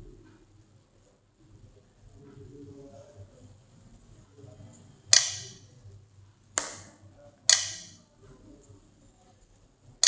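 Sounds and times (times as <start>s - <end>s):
sharp electronic key clicks: 5.2s - 5.6s, 7.5s - 8.0s.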